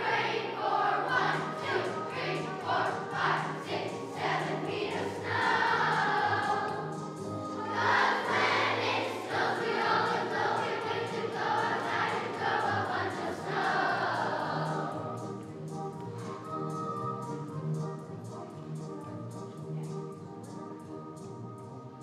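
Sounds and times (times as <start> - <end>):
children's choir singing: 0.0 - 18.7.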